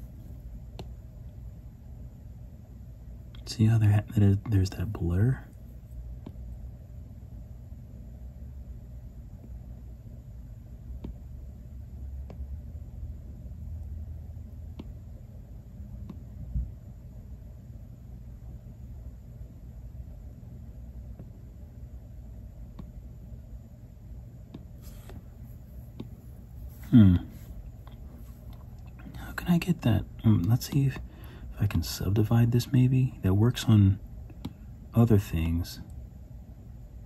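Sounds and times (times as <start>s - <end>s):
low room rumble: 0.0s - 37.0s.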